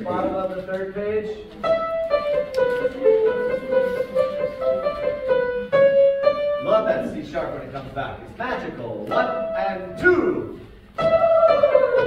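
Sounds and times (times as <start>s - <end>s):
piano: 0.0s - 8.4s, 9.0s - 12.0s.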